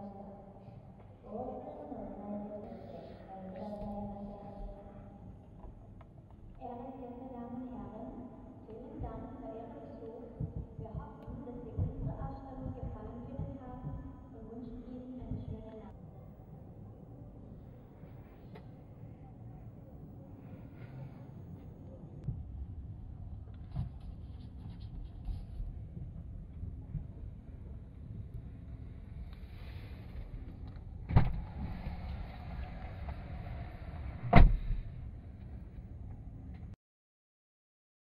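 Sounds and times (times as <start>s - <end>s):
steady low rumble: 0.0s - 36.8s.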